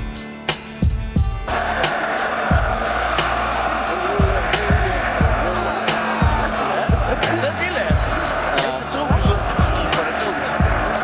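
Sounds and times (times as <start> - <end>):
hip-hop beat: 0.0 - 11.0
loud crowd din: 1.5 - 11.0.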